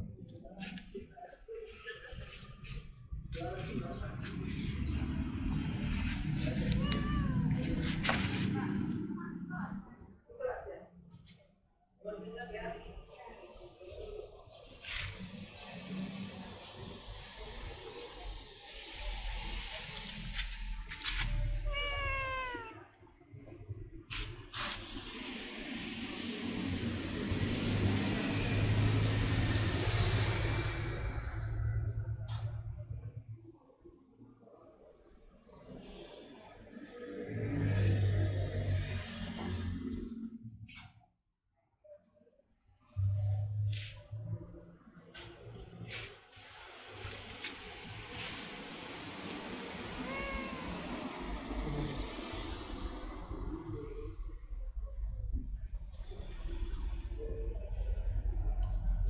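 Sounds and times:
low rumbling noise: 2.5s - 10.1s, 23.5s - 33.6s
motor vehicle passing by: 2.6s - 9.5s, 24.1s - 32.1s, 36.8s - 40.2s
cat meowing: 6.4s - 7.8s, 21.4s - 22.9s, 49.9s - 51.0s.

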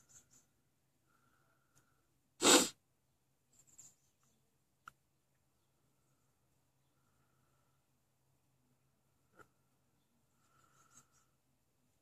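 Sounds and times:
person sneezing: 2.4s - 2.8s.

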